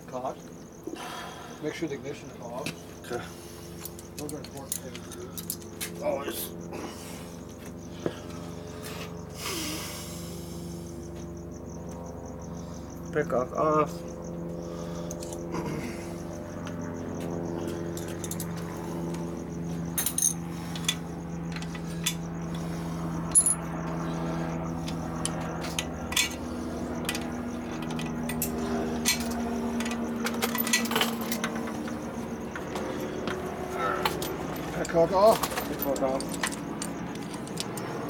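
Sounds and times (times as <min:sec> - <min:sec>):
cricket trill: 0:00.0 - 0:38.0
steady hum: 0:00.0 - 0:38.0
hand tools clinking on metal: 0:03.7 - 0:06.4, 0:17.9 - 0:18.6, 0:19.9 - 0:22.2, 0:23.3 - 0:23.6, 0:25.2 - 0:38.0.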